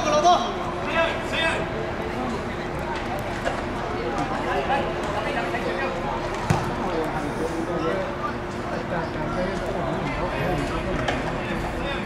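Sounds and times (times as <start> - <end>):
football kicked thud: 6.4 - 6.8.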